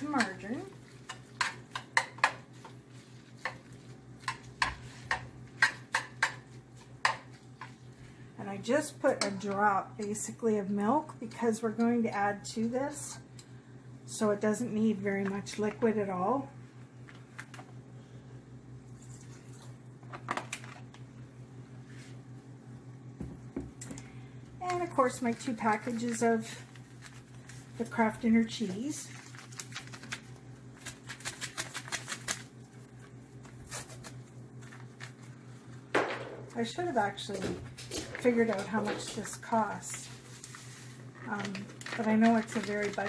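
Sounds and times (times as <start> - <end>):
metal spoon stirring in pot: 0.0 - 7.7.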